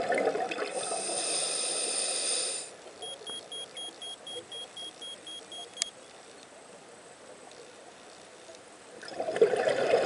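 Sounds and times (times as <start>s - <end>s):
faint underwater hiss: 0.0s - 3.0s.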